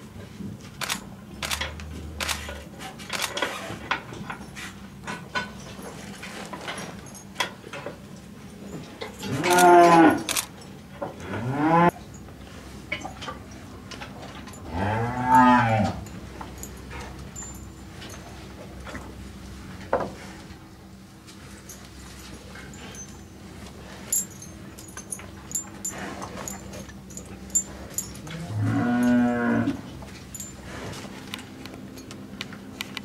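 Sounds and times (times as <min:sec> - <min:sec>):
cows mooing: 0:09.2 - 0:10.3, 0:14.6 - 0:16.0, 0:27.9 - 0:29.9.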